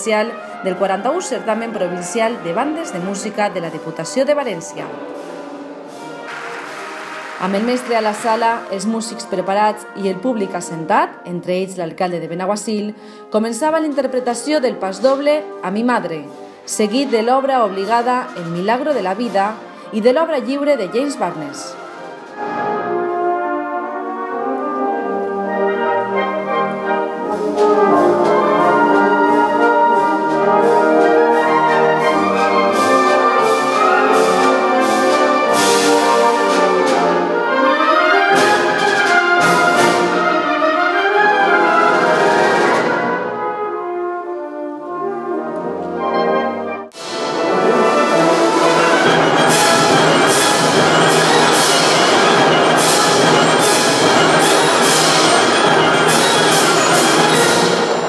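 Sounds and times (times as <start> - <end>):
wind band playing: 0.0 - 11.4, 16.3 - 58.0
percussion strikes and cymbals: 2.2 - 9.9, 21.5 - 23.5, 26.2 - 40.8, 46.9 - 58.0.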